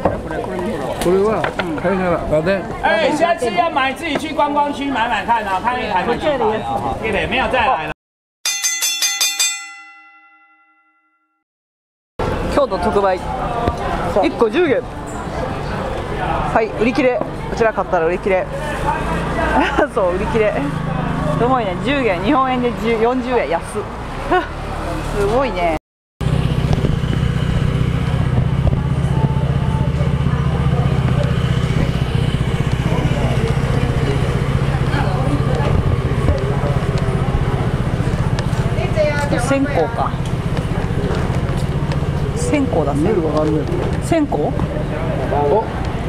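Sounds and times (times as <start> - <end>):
chime bell strikes: 8.5 - 11.3
small engine droning: 26.2 - 46.0.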